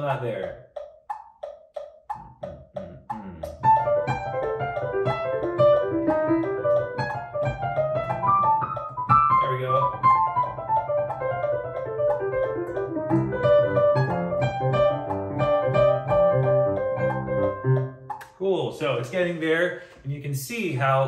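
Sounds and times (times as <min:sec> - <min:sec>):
metronome clicking: 0:00.0 - 0:18.4
digital piano fast notes: 0:00.0 - 0:19.1.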